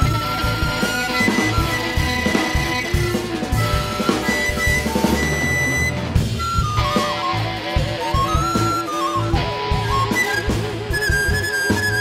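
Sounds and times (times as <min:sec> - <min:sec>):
drum kit: 0:00.0 - 0:12.0
electric guitar: 0:00.0 - 0:12.0
recorder melody: 0:00.0 - 0:12.0
upright bass: 0:00.0 - 0:12.0.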